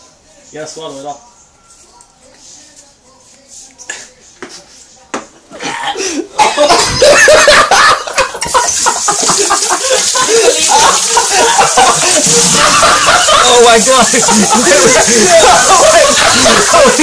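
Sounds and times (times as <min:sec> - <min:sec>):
person coughing and sputtering: 0:05.5 - 0:07.2
people laughing: 0:06.0 - 0:17.0
people shouting: 0:12.4 - 0:17.0.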